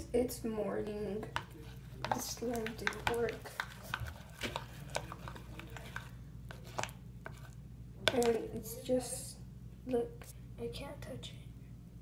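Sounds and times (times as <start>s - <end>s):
low steady hum: 0.0s - 12.0s
spoon tapping plastic bowl: 1.3s - 8.4s.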